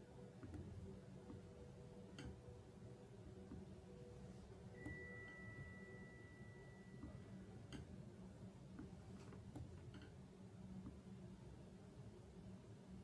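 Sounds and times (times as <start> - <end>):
faint high-pitched tone: 3.9 - 7.6.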